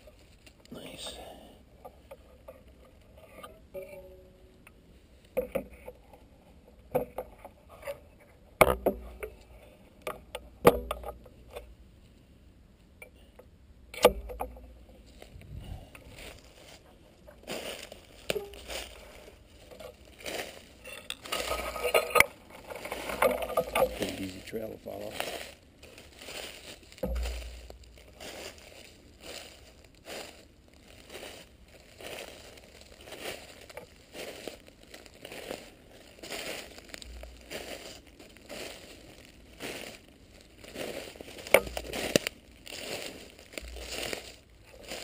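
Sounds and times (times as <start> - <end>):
footsteps crunching through dry leaves: 15.0 - 45.0
sharp knocks: 27.0 - 28.0.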